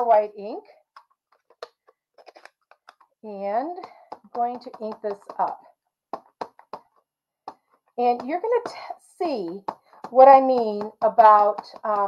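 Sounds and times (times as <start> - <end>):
ink pad tapping on stamp: 1.0 - 12.0.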